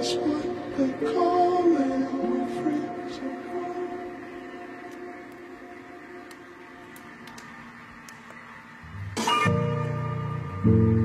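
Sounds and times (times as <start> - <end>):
reverb-heavy song chords: 0.0 - 11.0
faint clicks: 6.2 - 8.4.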